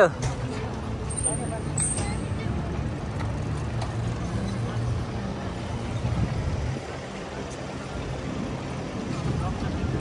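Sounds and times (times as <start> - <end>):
city street traffic: 0.0 - 10.0
low vehicle engine hum: 0.0 - 10.0.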